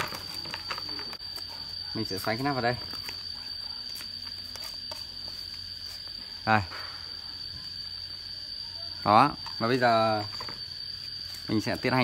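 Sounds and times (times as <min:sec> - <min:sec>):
steady high-pitched whine: 0:00.0 - 0:12.0.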